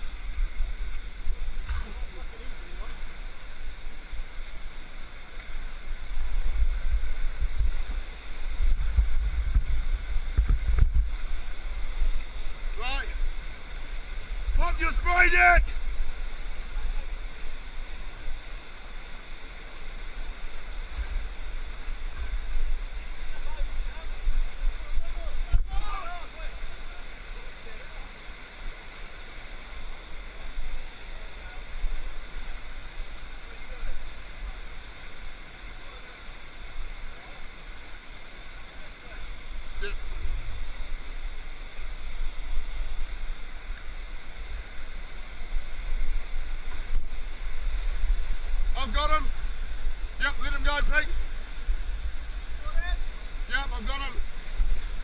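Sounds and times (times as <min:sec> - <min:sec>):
white water rushing around rocks: 0:00.0 - 0:55.0.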